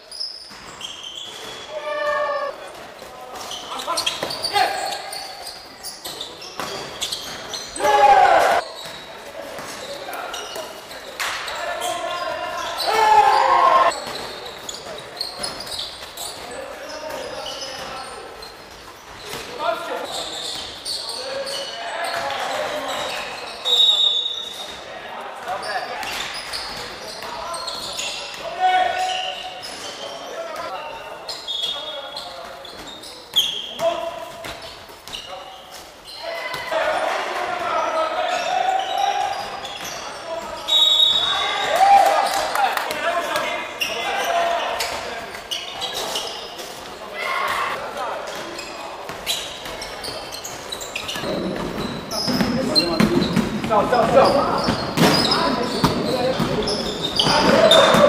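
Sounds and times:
sneaker squeaks: 0.0s - 58.0s
players calling out: 11.5s - 14.0s, 51.2s - 58.0s
ball bouncing on wooden court: 49.1s - 58.0s.

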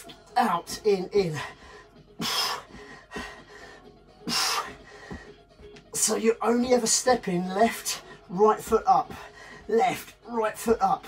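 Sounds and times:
man breathing out hard: 1.4s - 5.4s.

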